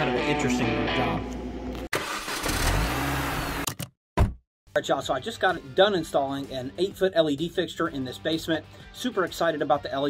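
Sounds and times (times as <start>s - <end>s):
car engine revving: 2.0s - 3.6s.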